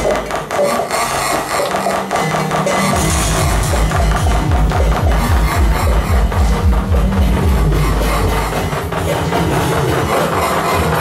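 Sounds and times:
held low synthesizer tone: 0.0s - 11.0s
noisy high electronic textures: 0.0s - 11.0s
pulsing synthesizer bass line: 0.0s - 11.0s.

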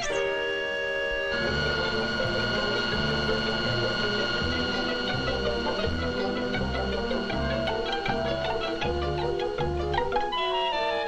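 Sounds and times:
orchestral cartoon music: 1.3s - 11.0s.

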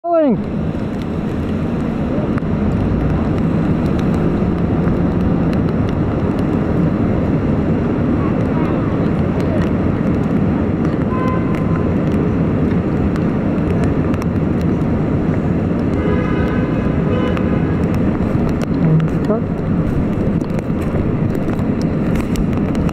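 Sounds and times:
traffic din: 0.0s - 22.9s
voices of passers-by: 0.2s - 22.9s.

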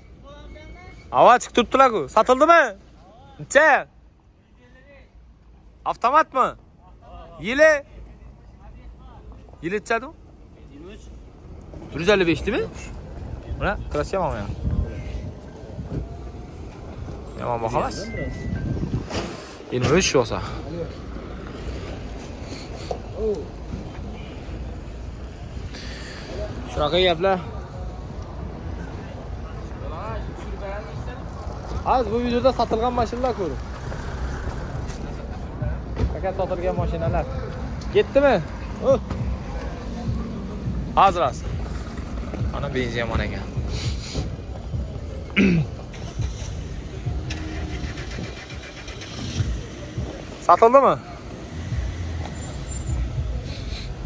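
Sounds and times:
wind buffeting microphone: 13.0s - 17.2s, 18.3s - 19.4s.

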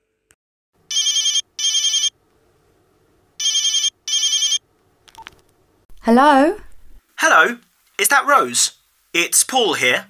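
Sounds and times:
telephone ringing: 0.9s - 2.2s, 3.4s - 4.6s.

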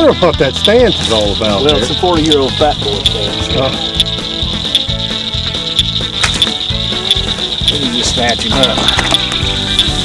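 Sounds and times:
background music with bass and beat: 0.0s - 10.0s
night insects chorus: 0.7s - 10.0s.

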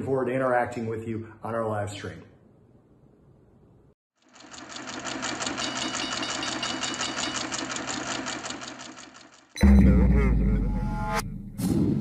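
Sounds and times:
rapid machine-like ticking: 4.2s - 9.6s
loud deep boom: 9.6s - 12.0s.

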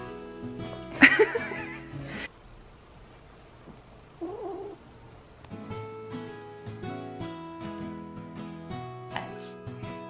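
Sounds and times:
kitten mewing: 4.2s - 4.8s.

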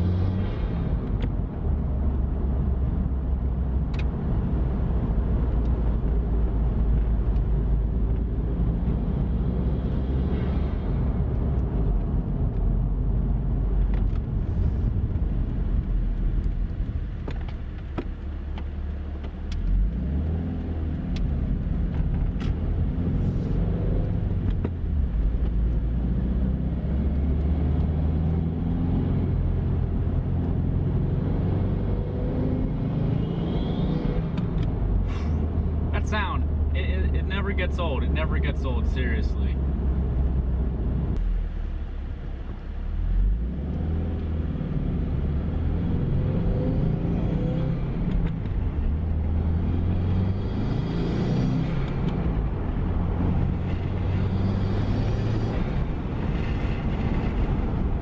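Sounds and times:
car engine accelerating: 0.0s - 58.0s
road noise: 0.0s - 58.0s.

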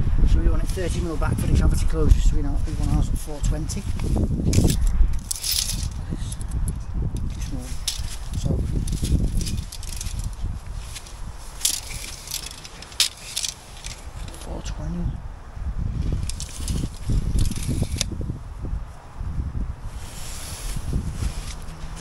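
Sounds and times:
insulation slabs rustling: 0.6s - 14.8s, 16.0s - 18.1s.

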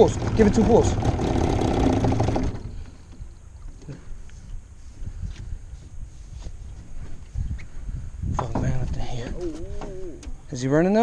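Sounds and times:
boat motor running: 0.0s - 4.0s.

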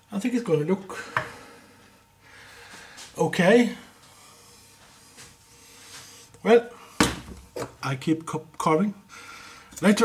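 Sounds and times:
soft rubbing and handling: 3.9s - 6.4s.

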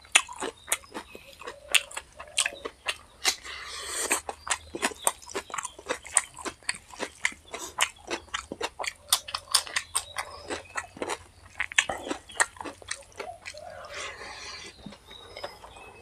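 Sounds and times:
wet chewing and lip-smacking: 0.0s - 16.0s.

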